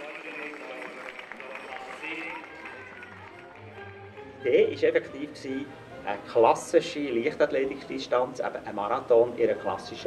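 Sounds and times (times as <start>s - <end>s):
crowd of voices talking: 0.0s - 10.0s.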